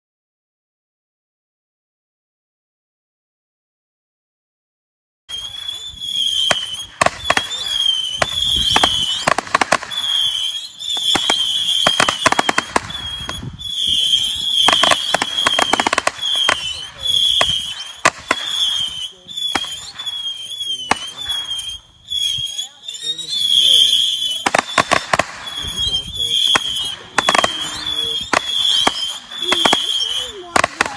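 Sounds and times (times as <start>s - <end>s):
firework bangs: 5.3s - 30.9s
firework missiles whistling: 5.3s - 30.9s.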